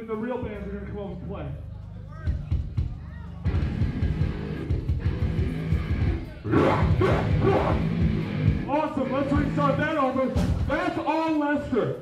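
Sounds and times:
rock band playing: 3.4 - 9.9
person yelling vocals: 6.5 - 7.9.

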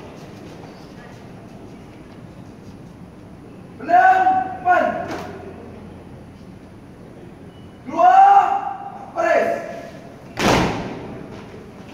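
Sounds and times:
shouted drill command: 3.8 - 5.3, 7.8 - 10.0.

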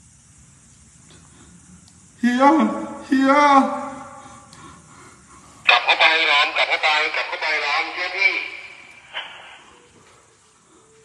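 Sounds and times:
person speaking loudly: 2.2 - 4.2, 5.7 - 9.6.

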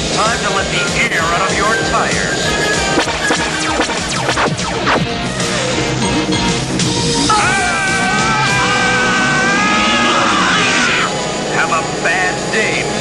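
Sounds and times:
cartoon action music: 0.3 - 11.2
gliding vocal-like cries: 7.3 - 11.2.

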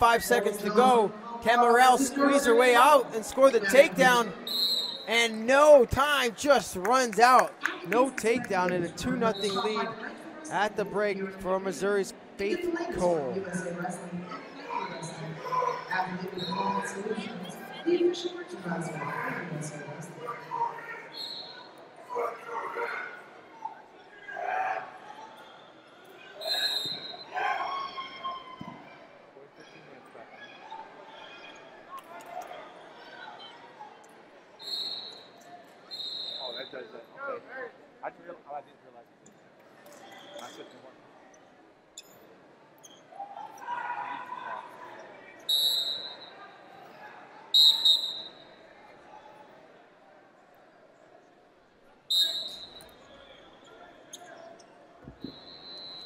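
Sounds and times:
voices in a large hall: 0.0 - 56.0
referee's whistle blasts: 4.0 - 5.3, 26.4 - 27.3, 34.6 - 36.8, 45.5 - 46.4, 47.6 - 48.5, 52.1 - 53.0, 55.2 - 56.0.

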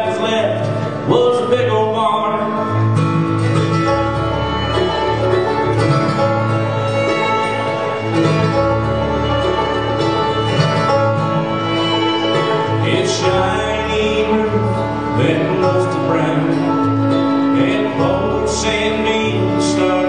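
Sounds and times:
bluegrass band playing: 0.0 - 20.0.

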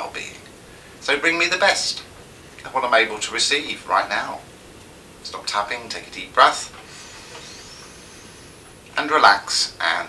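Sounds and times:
microphone hiss: 0.0 - 10.0
man breathing deeply: 6.8 - 8.8.

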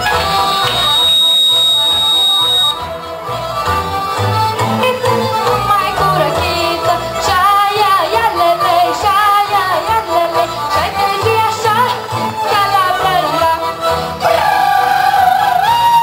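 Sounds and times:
folk dance music: 0.0 - 16.0
girl singing with vibrato: 5.7 - 16.0.

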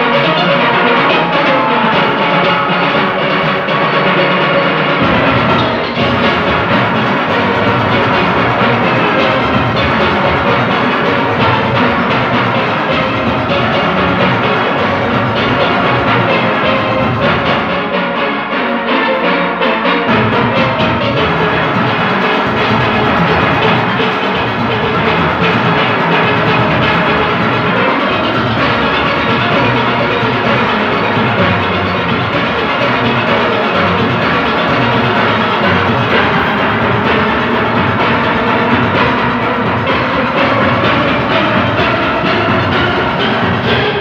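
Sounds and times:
percussion beat: 0.0 - 44.0
steel orchestra playing: 0.0 - 44.0.

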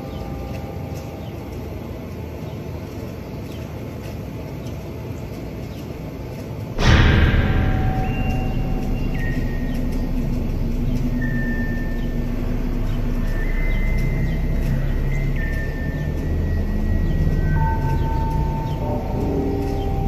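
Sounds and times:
low rumble of wind on microphone: 6.7 - 20.0
long held high notes: 6.8 - 20.0.

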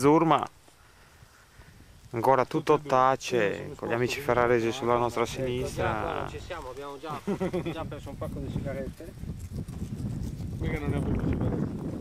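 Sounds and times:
man talking: 2.1 - 9.2, 10.6 - 11.6.

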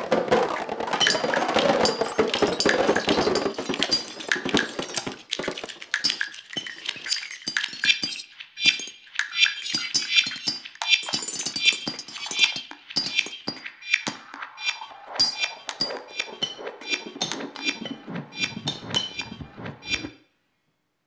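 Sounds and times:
sticks clattering on snare drum: 0.0 - 8.9
processed electronic fragments: 0.0 - 20.1.

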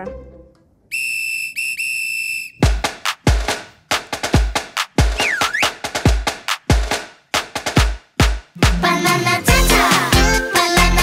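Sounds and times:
whistle blowing: 0.9 - 2.8, 5.2 - 5.8
dance track with kick drum: 2.6 - 10.4.

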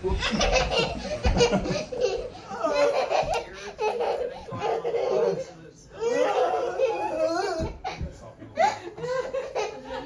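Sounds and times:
toddler laughing hysterically: 0.0 - 10.0.

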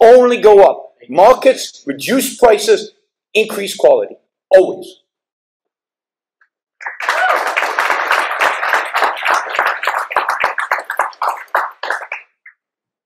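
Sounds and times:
audience applauding: 6.8 - 12.5.

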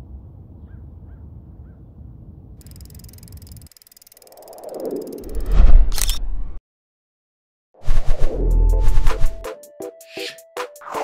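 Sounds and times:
whoosh: 4.4 - 6.6.

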